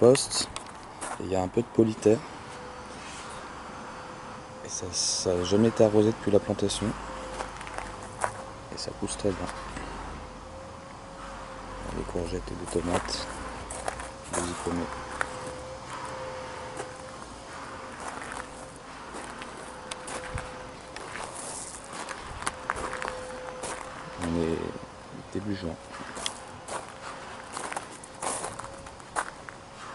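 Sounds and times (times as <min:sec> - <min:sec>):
footsteps crunching on gravel: 0:00.0 - 0:01.6, 0:06.8 - 0:08.5, 0:11.9 - 0:24.6, 0:25.4 - 0:29.9
faint steady buzz: 0:00.0 - 0:29.9.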